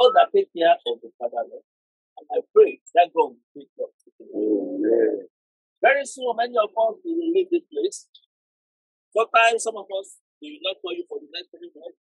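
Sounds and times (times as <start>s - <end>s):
person humming: 4.3s - 5.2s.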